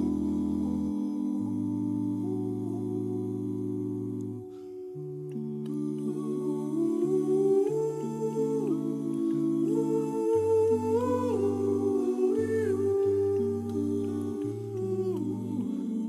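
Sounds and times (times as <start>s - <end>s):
male a cappella group singing chords: 0.0s - 4.6s, 5.3s - 16.0s.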